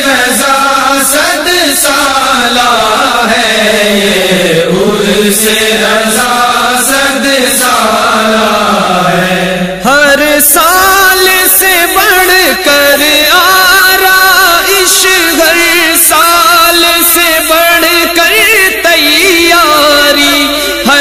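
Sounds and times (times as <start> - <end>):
wordless vocal chant: 0.0 - 21.0.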